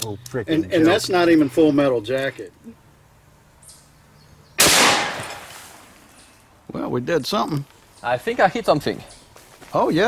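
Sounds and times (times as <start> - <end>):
rifle shot echoing: 4.6 - 5.7.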